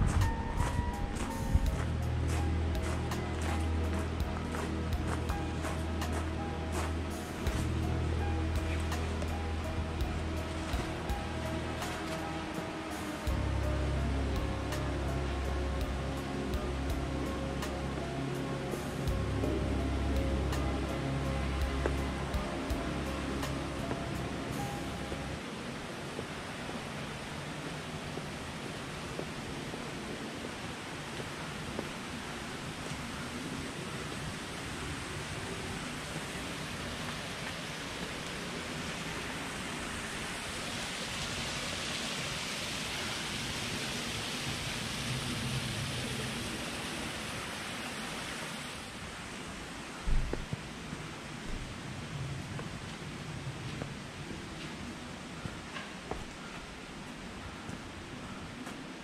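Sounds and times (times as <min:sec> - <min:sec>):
rocky stream rushing: 0:00.0 - 0:59.0.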